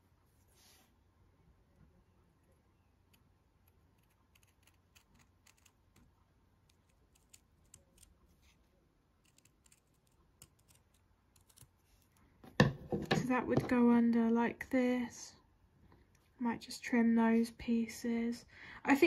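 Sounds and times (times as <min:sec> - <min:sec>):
knock: 0:12.5 - 0:13.7.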